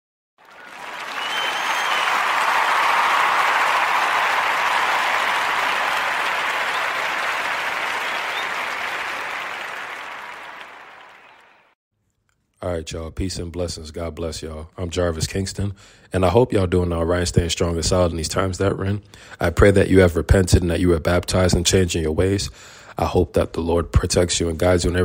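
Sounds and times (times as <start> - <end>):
crowd applause: 0.4 - 11.8.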